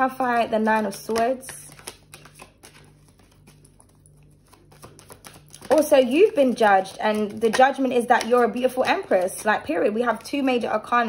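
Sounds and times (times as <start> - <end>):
low steady hum: 0.0 - 11.0
cards being shuffled: 0.1 - 10.8.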